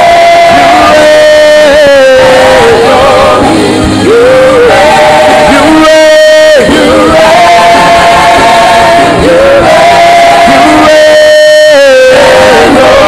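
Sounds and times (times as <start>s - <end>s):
gospel worship music: 0.0s - 13.0s
singing in long held notes: 0.0s - 13.0s.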